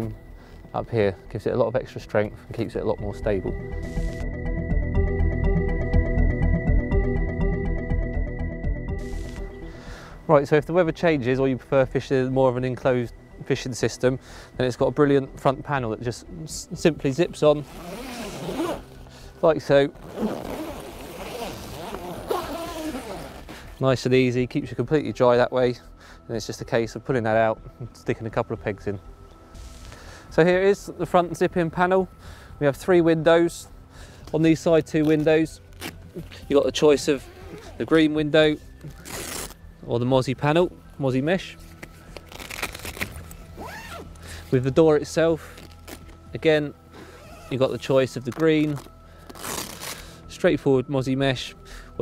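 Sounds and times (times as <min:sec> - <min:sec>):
zip being drawn: 0:03.8 - 0:04.2, 0:17.7 - 0:19.0, 0:20.0 - 0:23.6, 0:37.2 - 0:37.8, 0:39.0 - 0:39.6, 0:42.3 - 0:44.1, 0:47.1 - 0:47.6.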